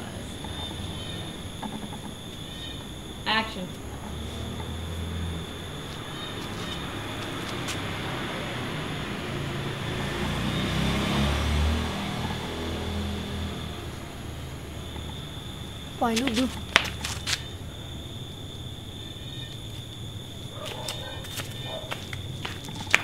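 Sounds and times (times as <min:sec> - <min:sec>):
high insect trill: 0:00.0 - 0:23.0.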